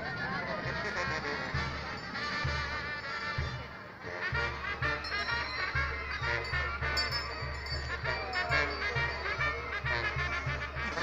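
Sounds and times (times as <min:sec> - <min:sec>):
wind instruments playing tune: 0:00.0 - 0:11.0.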